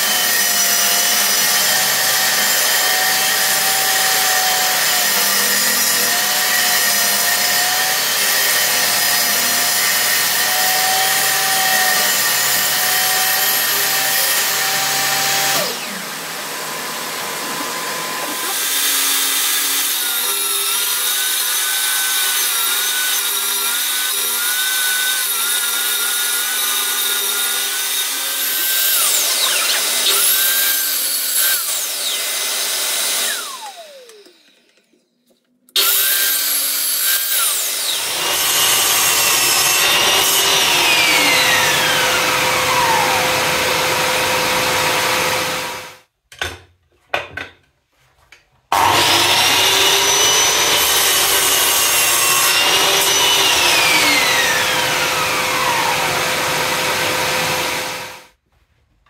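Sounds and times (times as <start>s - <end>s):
table saw ripping wood: 0.0s - 34.7s, 35.8s - 46.0s, 48.7s - 58.3s
mitre saw cutting dowels: 0.0s - 35.0s, 35.7s - 46.0s, 48.7s - 58.3s.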